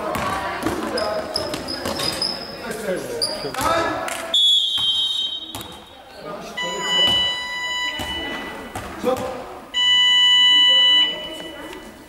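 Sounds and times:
referee's whistle: 4.3 - 5.8.

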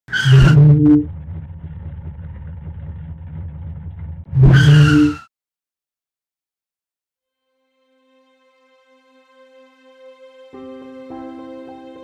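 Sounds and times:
engine burst and tyre screech: 0.1 - 5.3
car engine running: 0.2 - 5.0.

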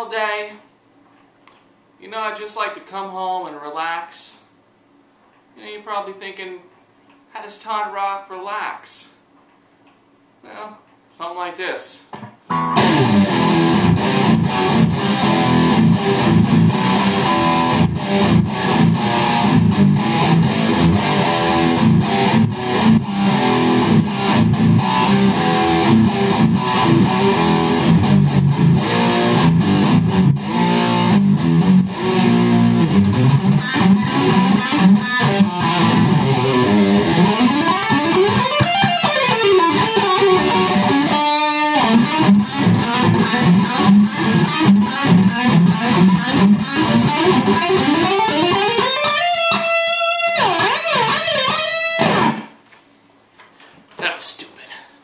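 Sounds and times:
distorted electric guitar: 12.2 - 52.6.

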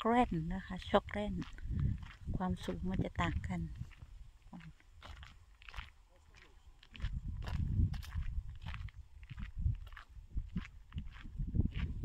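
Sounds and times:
footsteps walking outdoors: 0.0 - 12.0
low rumble on microphone: 1.0 - 4.7, 7.0 - 12.0.

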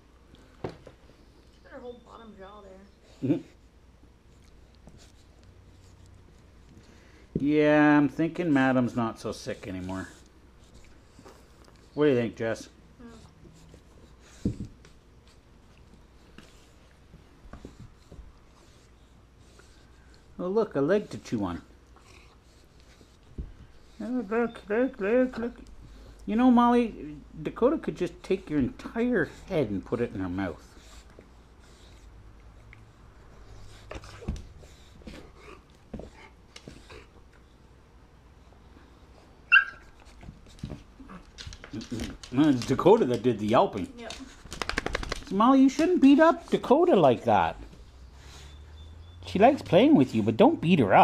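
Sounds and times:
dog yelping: 39.5 - 39.9
dogs scuffling on wooden floor: 39.8 - 47.9.

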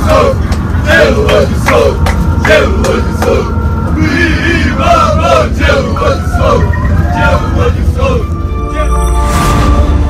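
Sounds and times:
passengers talking: 0.0 - 9.9
bus engine rumble: 0.0 - 10.0.

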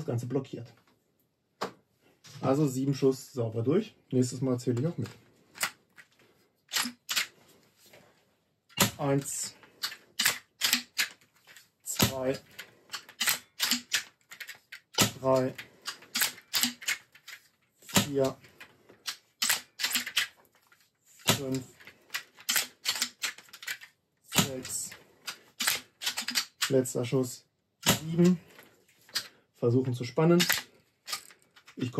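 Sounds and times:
air rifle lever clicks: 6.7 - 7.4, 8.7 - 20.4, 21.2 - 26.8, 30.4 - 31.8.

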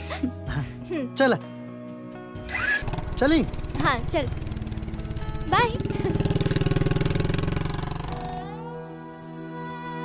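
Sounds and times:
soft music with sustained tones: 0.0 - 10.0
motorcycle engine running: 2.4 - 8.6.

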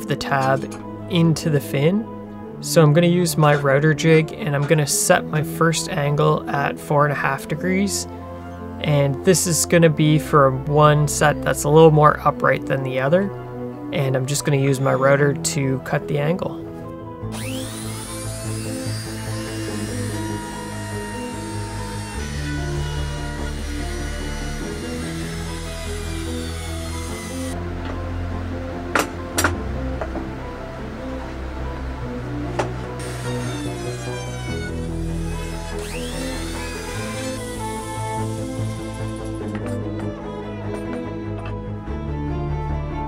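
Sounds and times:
background music: 0.0 - 43.0
trim router whine: 17.3 - 40.0.

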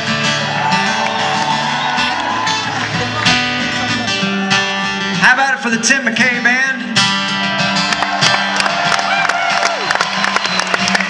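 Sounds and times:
acoustic guitar strummed and picked: 0.0 - 11.0
crowd noise: 0.0 - 11.0.

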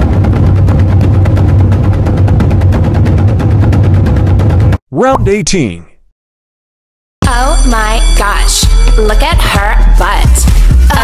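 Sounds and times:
rapid drumroll: 0.0 - 4.8
steady low rumble: 0.0 - 4.8.

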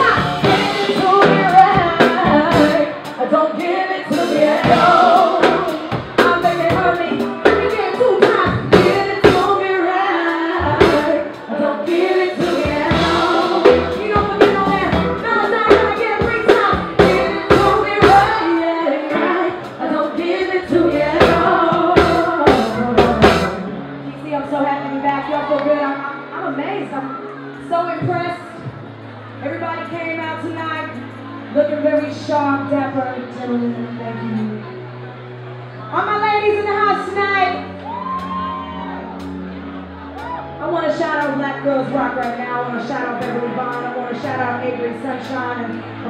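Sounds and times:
woman singing into microphone: 0.0 - 23.8
live band with drums and keyboards: 0.0 - 46.0.

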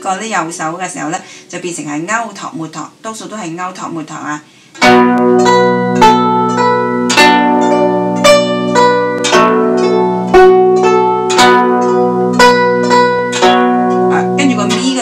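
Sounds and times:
plucked zither melody: 4.8 - 15.0.

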